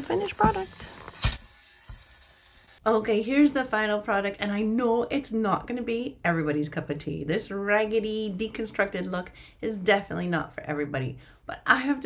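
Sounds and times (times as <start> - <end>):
woman speaking: 0.0 - 0.8, 2.8 - 12.0
fabric shaver hissing: 0.0 - 2.8.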